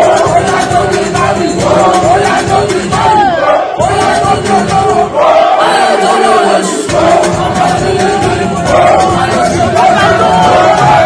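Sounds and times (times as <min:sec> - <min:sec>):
crowd shouting and cheering: 0:00.0 - 0:11.0
music: 0:00.0 - 0:11.0.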